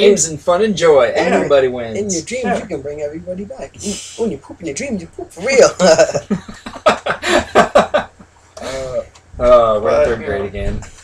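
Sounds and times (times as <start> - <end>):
men laughing: 5.4 - 8.9.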